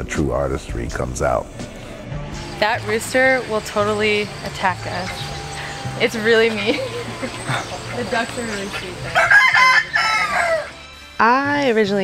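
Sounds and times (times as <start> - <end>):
rooster crowing: 3.6 - 10.8.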